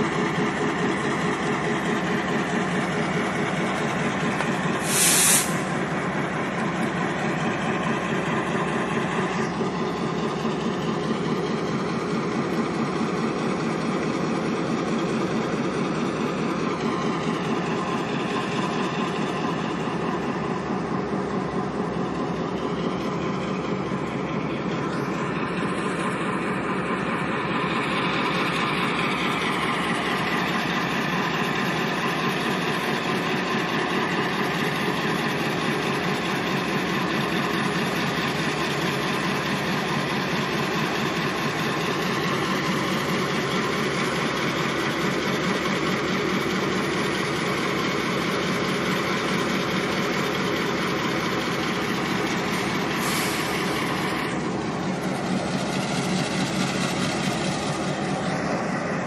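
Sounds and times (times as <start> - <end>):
diesel locomotive engine running: 0.0 - 59.0.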